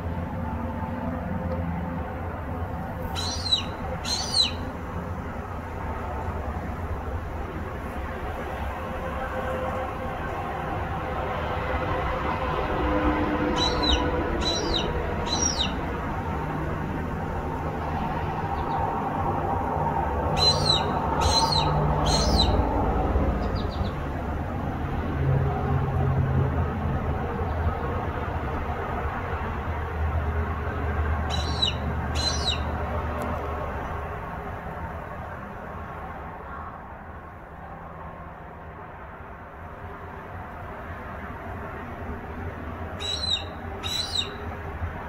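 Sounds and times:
bird high falling calls: 0:03.0 - 0:04.7, 0:13.5 - 0:15.9, 0:20.3 - 0:22.6, 0:31.3 - 0:32.8, 0:43.0 - 0:44.4.

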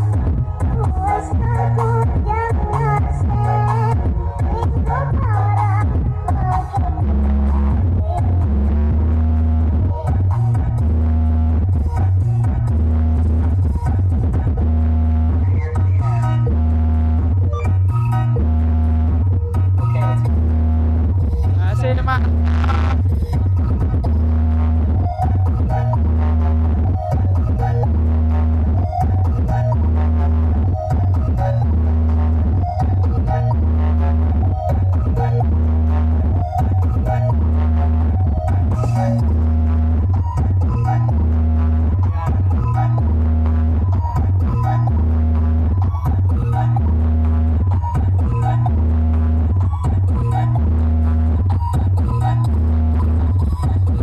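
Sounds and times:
loud dj music with heavy bass: 0:00.0 - 0:54.0.

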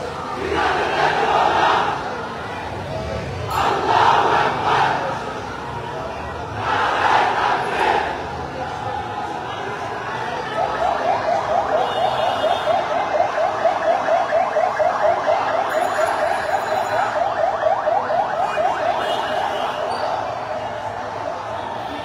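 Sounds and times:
large crowd noise: 0:00.0 - 0:22.0.

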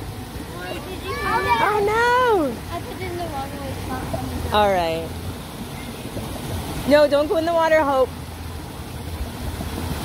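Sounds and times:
water flowing in a channel: 0:00.0 - 0:10.0.

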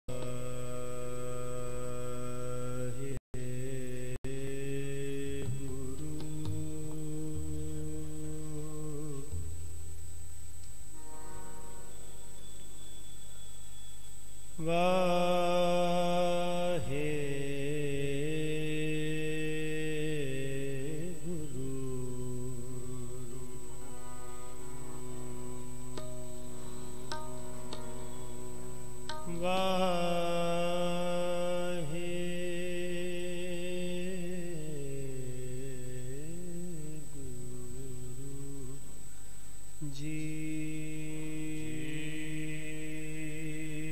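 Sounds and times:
man singing long held notes: 0:00.0 - 0:09.7, 0:14.6 - 0:43.9
sustained musical accompaniment: 0:10.9 - 0:14.0, 0:21.6 - 0:30.9
harmonium chord: 0:11.0 - 0:12.6, 0:23.8 - 0:29.9.

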